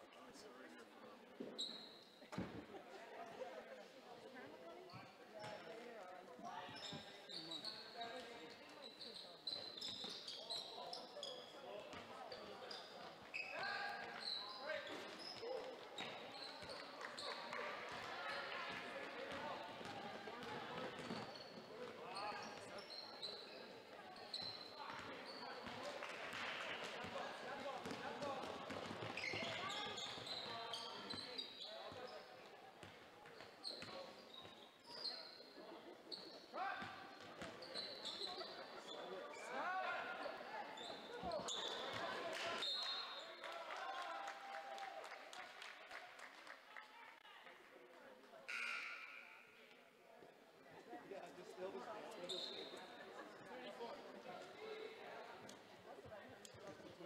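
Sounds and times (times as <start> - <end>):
crowd chatter: 0.0 - 57.0
sneakers squeaking on court: 1.5 - 2.6, 4.8 - 5.7, 6.6 - 17.5, 18.4 - 25.8, 27.8 - 39.5, 40.3 - 43.2, 52.1 - 53.4.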